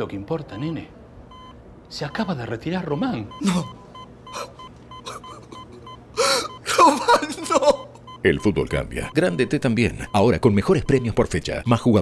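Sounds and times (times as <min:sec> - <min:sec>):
hospital monitor beeping: 0:00.4 - 0:11.8
man crying wail: 0:03.4 - 0:07.9
man gasping: 0:06.2 - 0:06.6.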